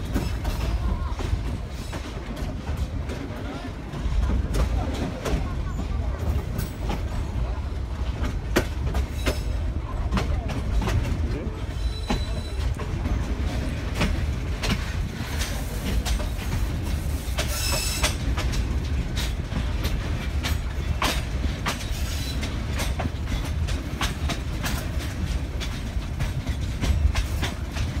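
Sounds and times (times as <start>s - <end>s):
train rumble: 0.0s - 28.0s
wheels clattering over rails: 0.0s - 28.0s.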